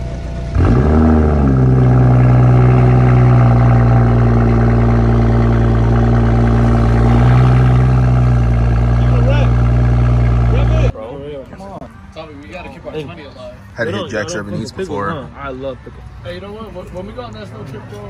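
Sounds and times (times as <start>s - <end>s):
car engine starting and idling: 0.0s - 10.9s.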